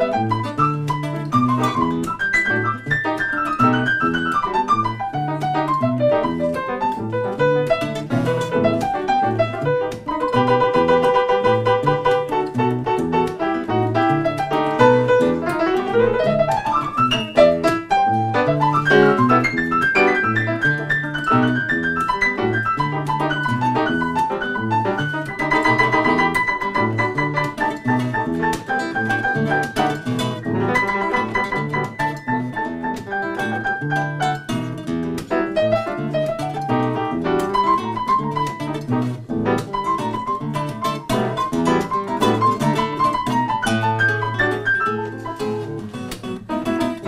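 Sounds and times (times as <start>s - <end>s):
grand piano playing latin jazz: 0.0s - 47.0s
nylon-string guitar: 0.0s - 47.0s.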